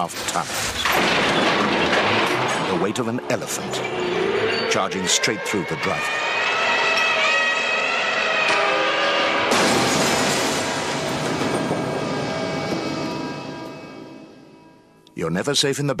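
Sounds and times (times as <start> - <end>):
crash with glass shattering: 0.0 - 4.7, 9.4 - 14.6
blaring tone: 2.7 - 15.0.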